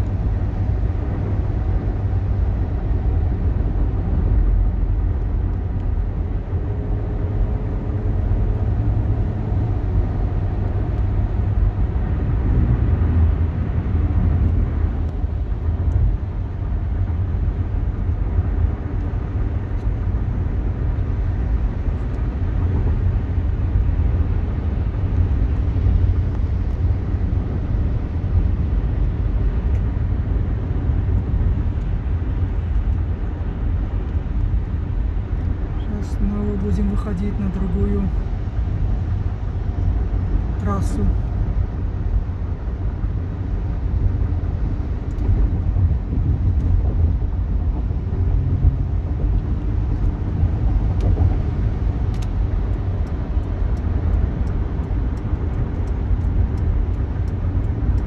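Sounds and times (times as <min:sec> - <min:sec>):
car engine rumble: 0:00.0 - 0:58.0.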